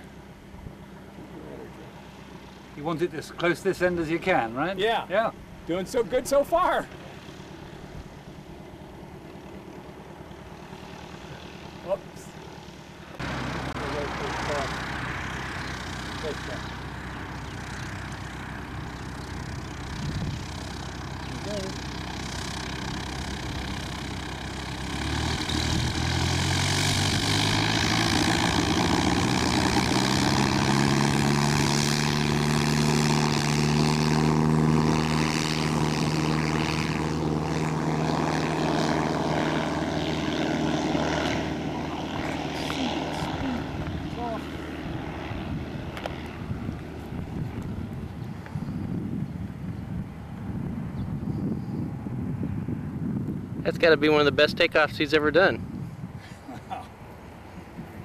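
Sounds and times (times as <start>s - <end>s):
propeller plane engine: 0.0s - 58.0s.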